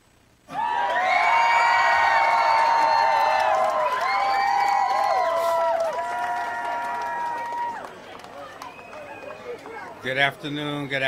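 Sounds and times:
crowd cheering and whooping: 0:00.5 - 0:09.9.

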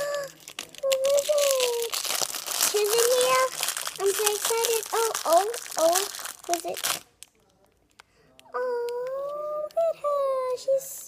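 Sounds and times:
child's voice holding a note: 0:00.0 - 0:07.0
plastic wrapper crinkling: 0:00.0 - 0:09.3.

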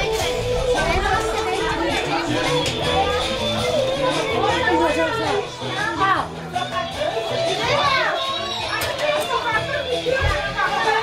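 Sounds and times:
adult chatter: 0:00.0 - 0:11.0
background music: 0:00.0 - 0:11.0
children's voices: 0:00.0 - 0:11.0
child's high voice: 0:07.5 - 0:11.0.

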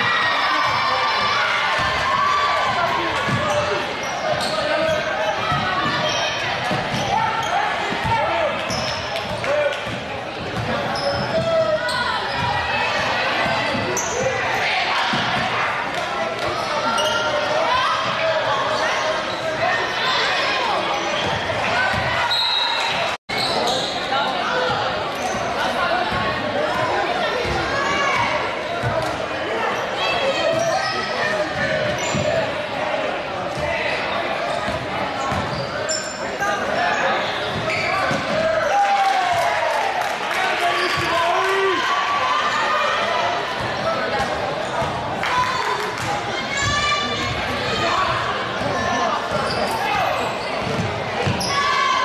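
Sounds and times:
crowd and player voices: 0:00.0 - 0:52.0
basketball bouncing on court: 0:03.2 - 0:03.6, 0:50.6 - 0:51.5
sneaker squeaks: 0:03.2 - 0:15.4, 0:16.4 - 0:20.2, 0:20.9 - 0:26.2, 0:29.7 - 0:32.5, 0:33.9 - 0:38.8, 0:44.6 - 0:45.0, 0:48.6 - 0:52.0.

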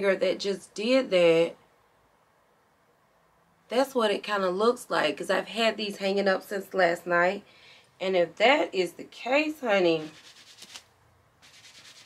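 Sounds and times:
fingers rubbing knit fabric: 0:10.0 - 0:12.0.

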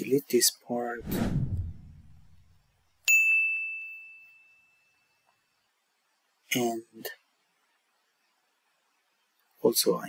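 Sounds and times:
low whoosh: 0:01.0 - 0:02.6.

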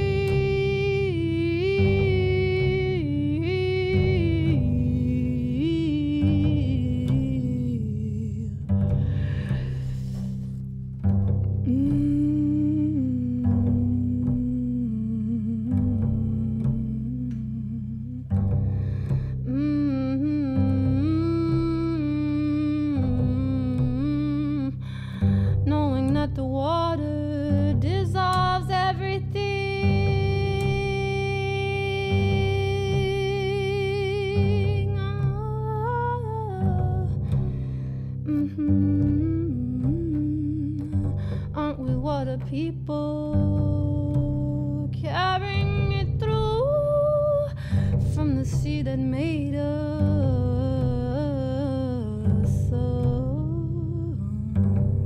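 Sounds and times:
woman humming and singing: 0:00.0 - 0:10.7, 0:11.6 - 0:55.0
double bass notes: 0:00.0 - 0:55.0.

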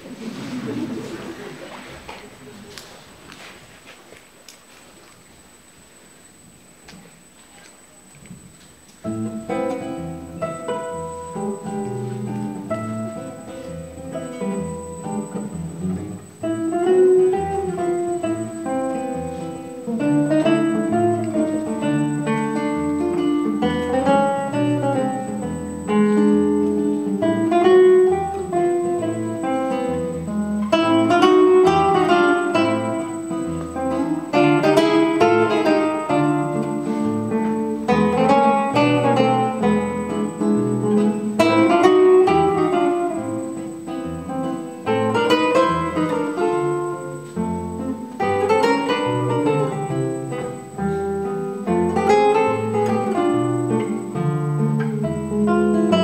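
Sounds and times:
classical guitar duet: 0:00.0 - 0:56.0.

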